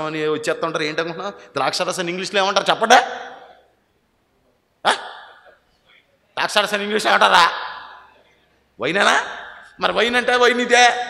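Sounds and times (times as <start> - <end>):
man shouting with echo: 4.8 - 5.5.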